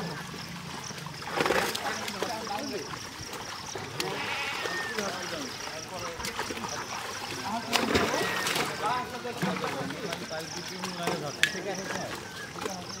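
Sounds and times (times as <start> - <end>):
fish splashing in water: 0.0 - 13.0
men talking: 1.9 - 3.0, 3.7 - 13.0.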